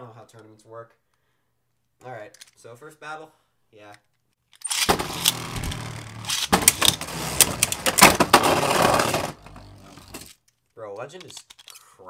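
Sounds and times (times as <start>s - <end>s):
spinning tops whirring: 4.7s - 10.3s
tops clacking together: 4.7s - 10.3s.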